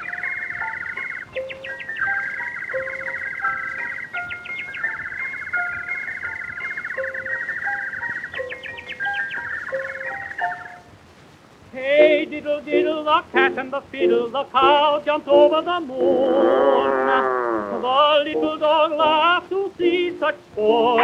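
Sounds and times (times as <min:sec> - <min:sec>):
imitation birdsong trill: 0:00.0 - 0:11.0, 0:12.0 - 0:21.0.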